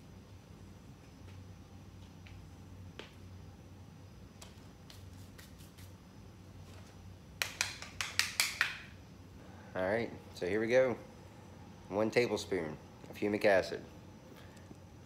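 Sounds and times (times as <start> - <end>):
low steady hum: 0.0 - 15.0
sharp clicks or slaps: 7.4 - 8.9.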